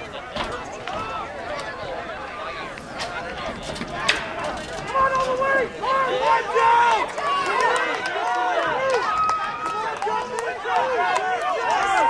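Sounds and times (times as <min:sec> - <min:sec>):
spectators shouting: 0:00.0 - 0:12.0.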